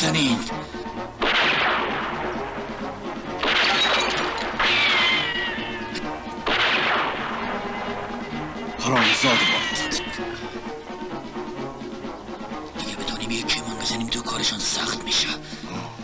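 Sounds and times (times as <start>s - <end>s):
bullet ricochet whine: 1.2s - 2.1s, 4.5s - 7.5s
rifle shots: 1.2s - 2.4s, 3.4s - 5.1s, 6.4s - 7.7s.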